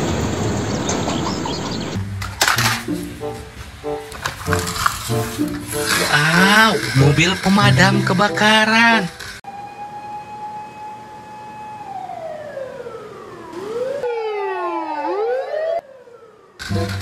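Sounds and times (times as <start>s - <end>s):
fire engine siren wailing: 5.7s - 17.0s.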